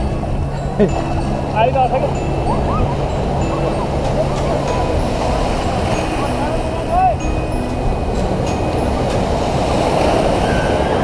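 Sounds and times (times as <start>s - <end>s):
faint voices of bathers: 0.4s - 11.0s
surf breaking: 0.9s - 11.0s.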